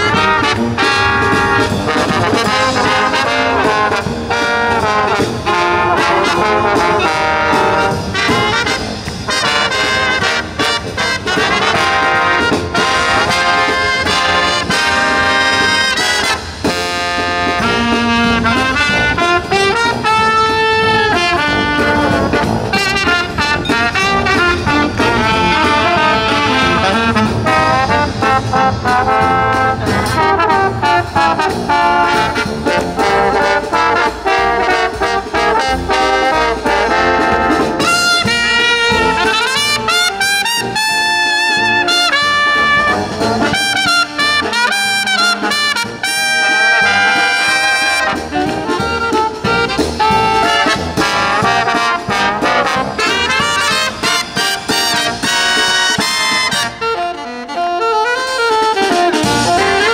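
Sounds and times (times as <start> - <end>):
marching brass band playing: 0.0 - 59.9.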